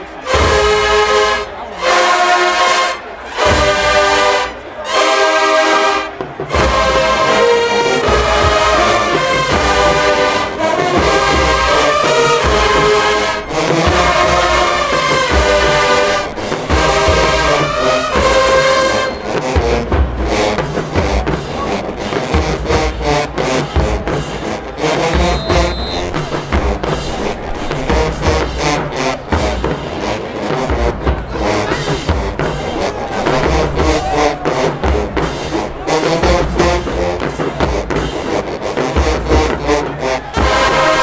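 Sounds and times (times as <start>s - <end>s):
brass and sousaphones: 0.0s - 41.0s
heavy bass drum beat: 8.1s - 41.0s.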